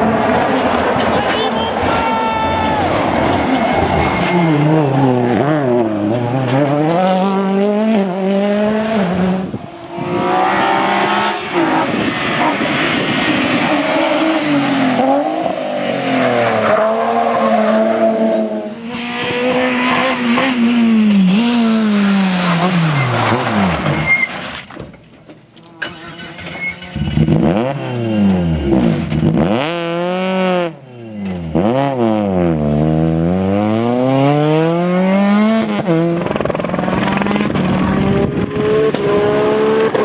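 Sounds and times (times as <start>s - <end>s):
rally car engines at full throttle: 0.0s - 24.6s, 25.6s - 40.0s.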